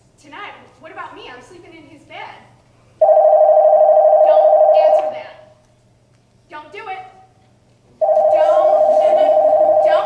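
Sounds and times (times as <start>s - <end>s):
telephone ringing: 3.0s - 5.0s, 8.0s - 10.0s.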